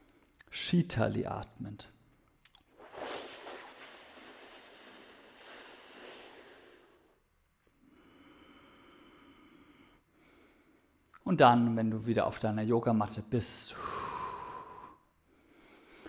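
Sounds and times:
man hissing inhale: 0:02.8 - 0:07.2.

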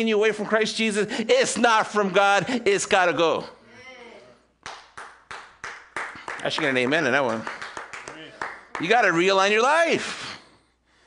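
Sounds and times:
slow hand clapping: 0:04.6 - 0:09.1.

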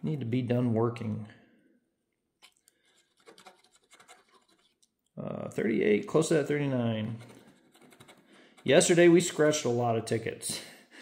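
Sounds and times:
coin scratching lottery ticket: 0:03.0 - 0:04.7, 0:07.1 - 0:08.9.

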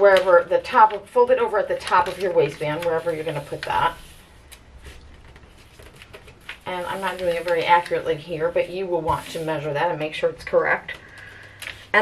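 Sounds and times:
low room hum: 0:00.0 - 0:12.0
paper rustling and crinkling: 0:01.6 - 0:09.7.

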